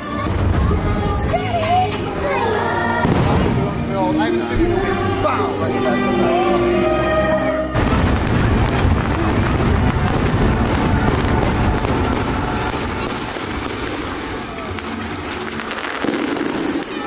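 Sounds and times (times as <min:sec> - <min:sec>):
fireworks booming and crackling: 0:00.1 - 0:02.1, 0:03.0 - 0:04.0, 0:07.8 - 0:17.0.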